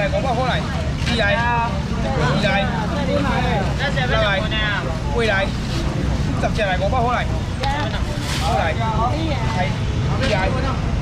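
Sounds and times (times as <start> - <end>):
loud voices talking: 0.0 - 11.0.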